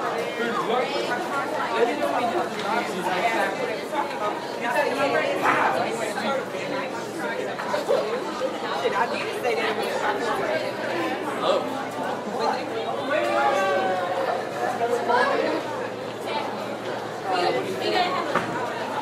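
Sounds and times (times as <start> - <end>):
students talking hubbub: 0.0 - 19.0.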